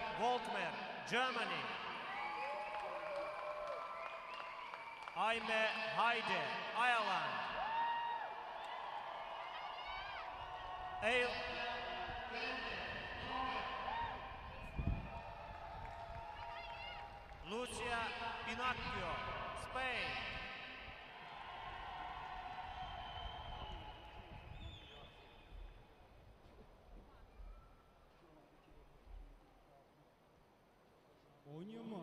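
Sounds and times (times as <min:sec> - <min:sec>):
crowd noise: 0:00.0 - 0:25.2.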